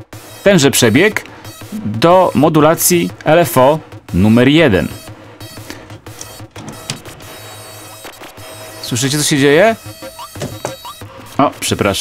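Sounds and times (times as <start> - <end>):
synthesizer low hum: 1.6 - 2.4
sharp clicks: 5.6 - 8.4.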